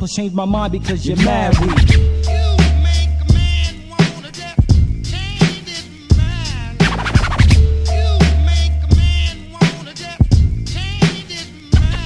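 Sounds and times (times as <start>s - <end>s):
hip-hop beat: 0.0s - 12.0s
rapping: 0.0s - 12.0s
deep bass note: 0.6s - 4.0s, 4.7s - 5.4s, 6.1s - 9.6s
turntable scratching: 0.9s - 10.2s, 10.9s - 12.0s
kick drums: 1.5s - 2.2s, 3.3s - 3.7s, 4.6s - 5.1s, 6.1s - 6.4s, 7.3s - 7.9s, 8.9s - 9.4s, 10.2s - 10.7s.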